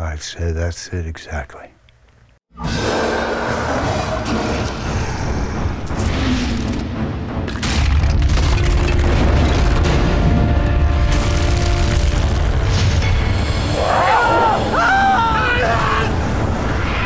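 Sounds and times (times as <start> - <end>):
dramatic music: 2.5 - 17.0.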